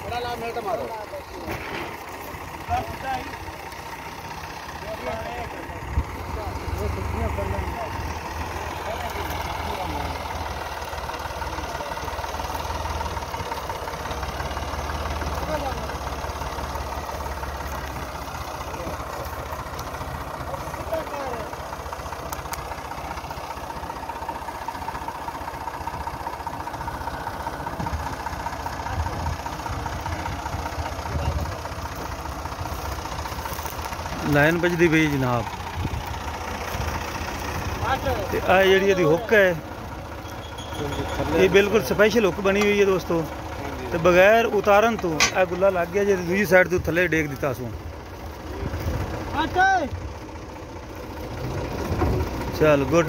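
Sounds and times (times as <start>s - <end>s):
tractor diesel engine idling: 0.0s - 53.0s.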